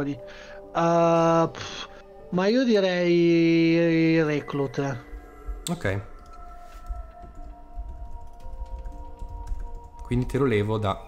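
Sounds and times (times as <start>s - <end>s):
quiet background music: 0.0s - 11.0s
computer keyboard typing: 5.7s - 11.0s.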